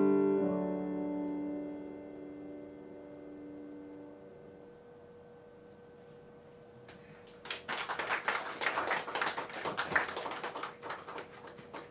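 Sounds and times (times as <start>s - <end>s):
audience applause: 7.3s - 11.9s.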